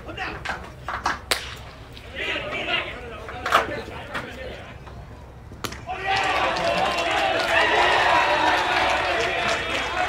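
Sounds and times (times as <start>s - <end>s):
baseball bat crack: 1.0s - 2.0s, 5.5s - 6.7s.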